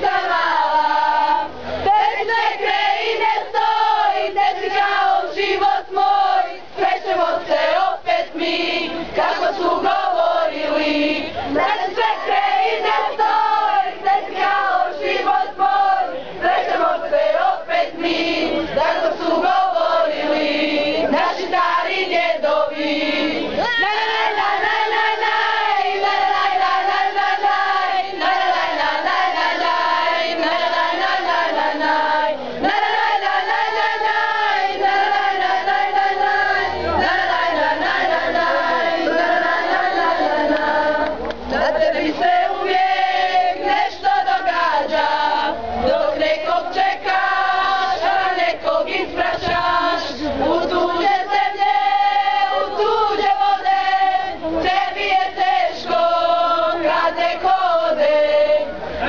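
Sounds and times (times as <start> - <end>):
girls singing in chorus: 0.0 - 59.0.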